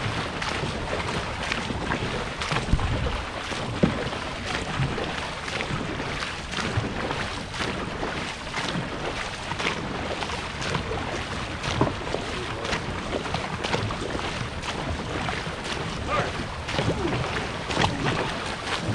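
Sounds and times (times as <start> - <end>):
wind on microphone: 0.0 - 8.0, 10.8 - 18.9
paddles splashing in water: 0.0 - 18.9
rushing water: 0.0 - 18.9.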